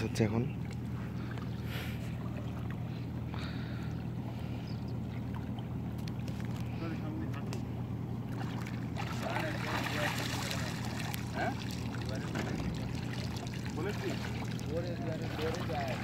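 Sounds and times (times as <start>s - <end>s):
steady low hum: 0.0s - 16.0s
water sloshing: 0.0s - 16.0s
water splash: 8.3s - 16.0s.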